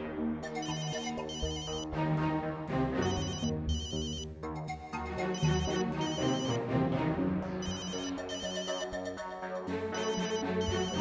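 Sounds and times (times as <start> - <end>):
mobile phone ringtone: 0.5 - 1.8, 3.0 - 4.3, 5.2 - 6.6, 7.6 - 9.1, 10.0 - 11.0.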